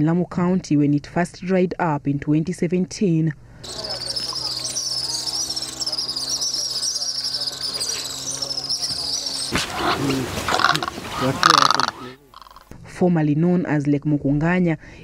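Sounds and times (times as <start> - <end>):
birds chirping: 3.6 - 12.7
chirping insects: 3.6 - 12.7
steady low hum: 3.7 - 11.2.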